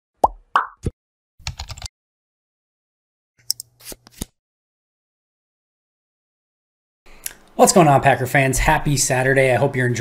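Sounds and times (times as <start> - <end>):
keyboard typing clicks: 1.4 - 1.9.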